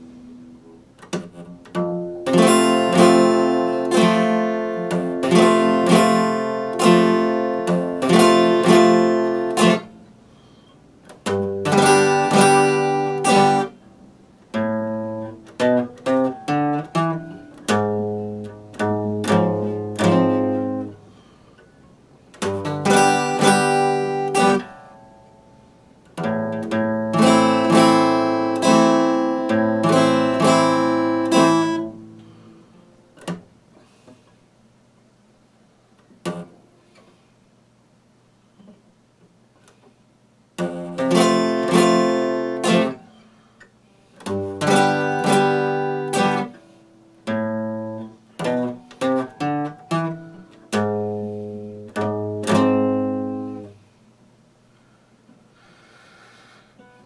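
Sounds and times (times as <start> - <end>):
guitar single picked notes: 0.0 - 21.5, 22.3 - 32.5, 40.6 - 43.2, 44.2 - 53.8
acoustic guitar strumming: 0.0 - 33.5, 36.2 - 37.0, 40.6 - 53.8, 55.6 - 57.0.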